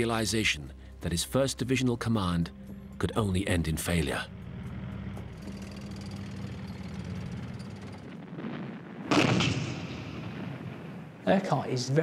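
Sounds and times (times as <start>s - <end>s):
low steady rumble: 2.5s - 8.4s
loud artillery blast: 8.2s - 11.2s.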